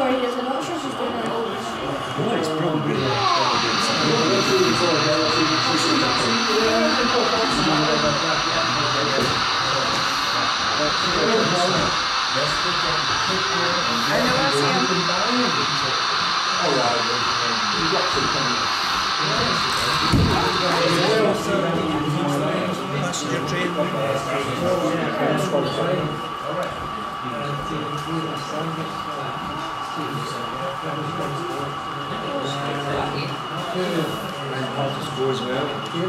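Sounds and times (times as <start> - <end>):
crowd chatter: 0.0 - 36.0
steady high hum: 0.0 - 36.0.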